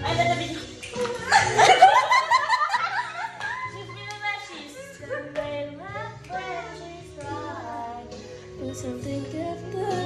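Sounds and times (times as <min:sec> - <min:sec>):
young women laughing: 0:00.2 - 0:04.0, 0:04.6 - 0:05.4.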